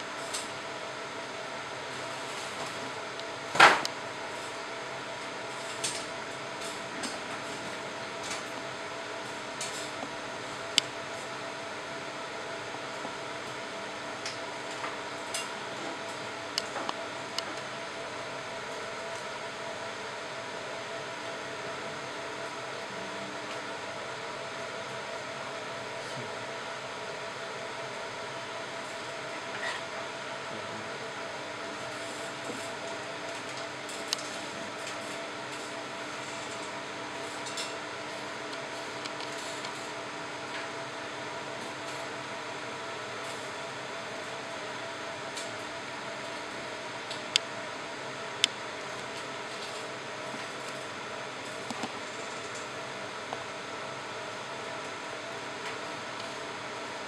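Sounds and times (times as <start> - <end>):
laser marking machine humming: 0.0 - 57.0.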